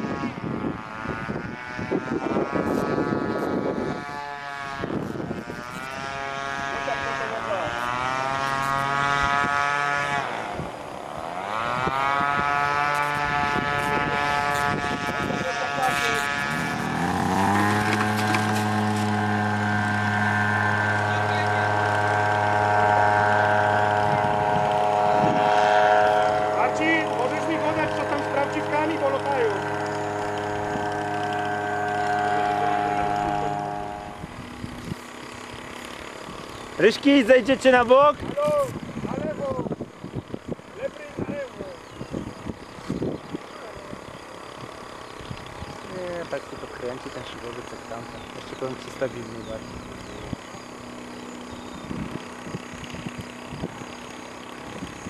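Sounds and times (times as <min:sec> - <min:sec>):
model plane engine revving: 0:00.0 - 0:55.0.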